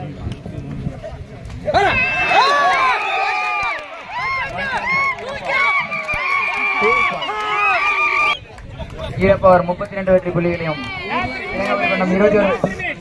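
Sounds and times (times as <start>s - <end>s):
crowd shouting excitedly: 1.7s - 8.4s, 10.4s - 13.0s.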